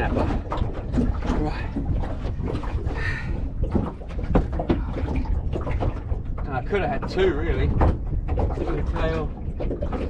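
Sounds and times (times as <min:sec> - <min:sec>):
fish knocking in boat: 0:00.0 - 0:10.0.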